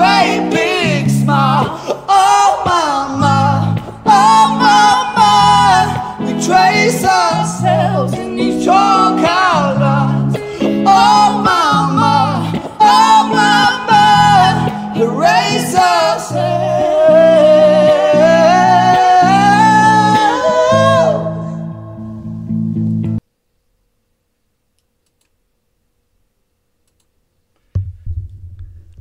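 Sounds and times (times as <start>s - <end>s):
man and woman singing duet: 0.0s - 22.0s
strummed electric guitar chords: 0.0s - 23.2s.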